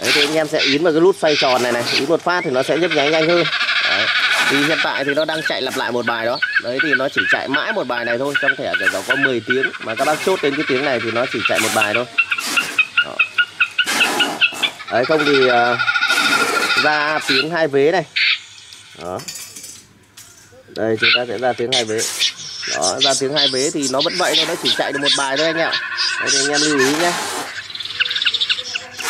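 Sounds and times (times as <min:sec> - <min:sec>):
bird call through loudspeaker: 0:00.0 - 0:19.2, 0:20.4 - 0:29.0
short high bird chirps: 0:20.4 - 0:29.0.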